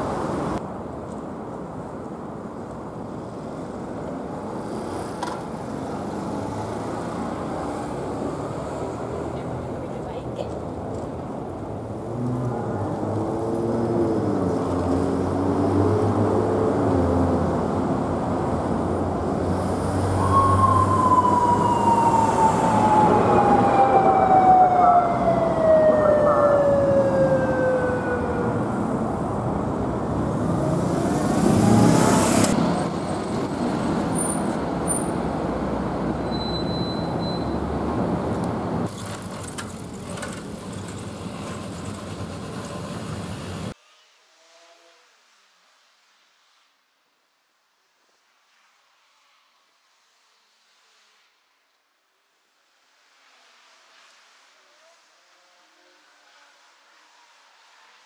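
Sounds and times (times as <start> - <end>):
city traffic: 0.0 - 44.0
vehicle passing: 11.8 - 36.3
police siren wailing: 20.0 - 30.9.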